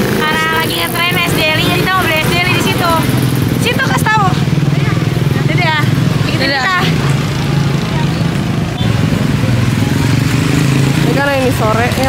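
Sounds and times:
motorcycle engine drone: 0:00.0 - 0:12.0.

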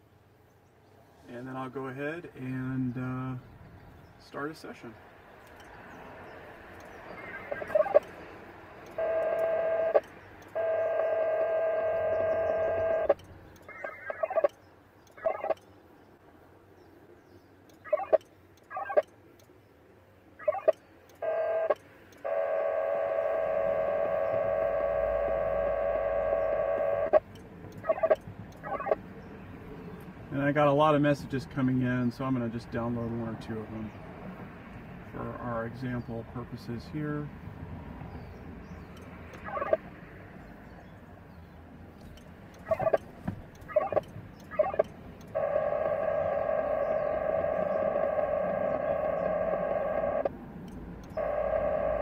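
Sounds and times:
steady stacked modem tones: 0:04.3 - 0:16.0, 0:17.6 - 0:29.1, 0:38.9 - 0:39.9, 0:42.1 - 0:52.0
digital modem tone bursts: 0:07.2 - 0:08.1, 0:08.9 - 0:14.5, 0:20.4 - 0:27.2, 0:43.7 - 0:50.3, 0:51.1 - 0:52.0.

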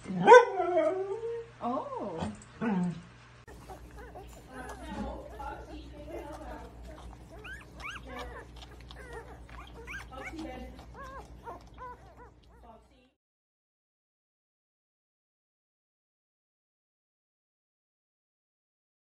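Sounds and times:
puppies squeaking and whimpering: 0:03.5 - 0:12.9.

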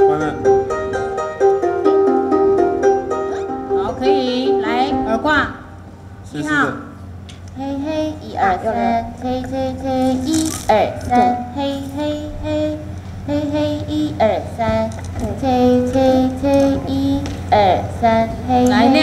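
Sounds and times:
solo melody with pitch slides: 0:00.0 - 0:05.8.

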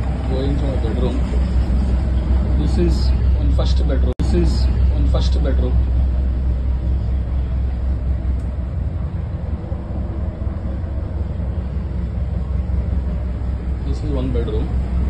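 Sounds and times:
boat engine droning: 0:00.0 - 0:15.0.

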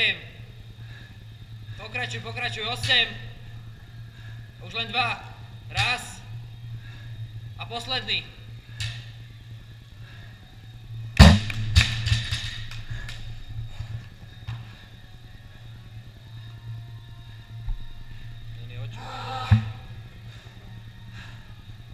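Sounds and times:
low hum: 0:00.0 - 0:21.9.

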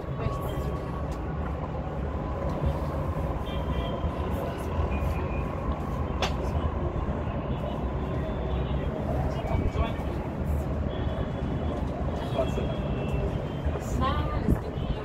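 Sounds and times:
city traffic rumble: 0:00.0 - 0:15.0.

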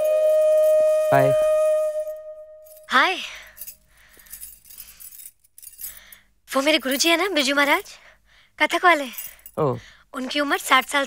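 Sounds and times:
metal trinkets jingling: 0:02.0 - 0:08.0, 0:08.7 - 0:11.0.

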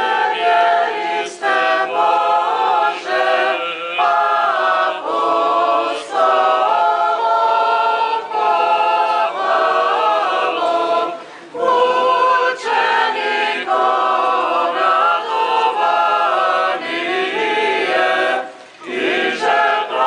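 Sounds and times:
choir singing a cappella chant: 0:00.0 - 0:20.0.

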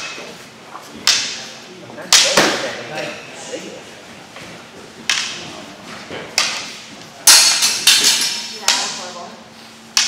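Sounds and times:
practice swords clacking: 0:00.0 - 0:00.3, 0:02.1 - 0:02.6, 0:05.0 - 0:05.4, 0:06.4 - 0:09.2.

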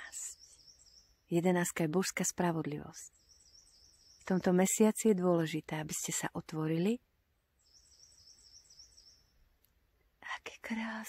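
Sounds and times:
songbird singing faintly: 0:00.0 - 0:11.0.

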